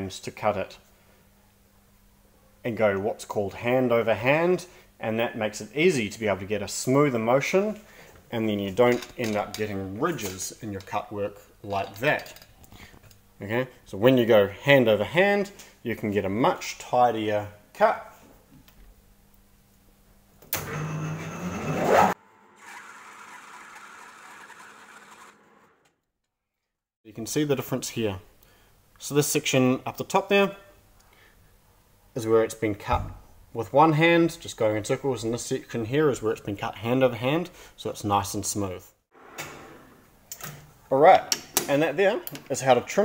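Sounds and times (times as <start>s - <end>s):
man speaking: 2.7s - 12.3s, 40.9s - 43.0s
lathe motor whine: 20.6s - 25.9s.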